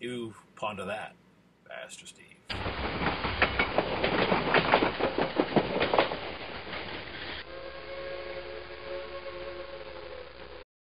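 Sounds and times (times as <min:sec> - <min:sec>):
train clattering: 0:02.5 - 0:07.5
train whistle chord: 0:07.4 - 0:10.6.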